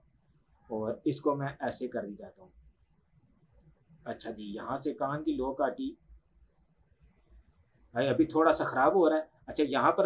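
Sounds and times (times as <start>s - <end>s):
faint computer mouse clicks: 0.0s - 0.4s, 2.4s - 4.1s, 5.9s - 7.8s.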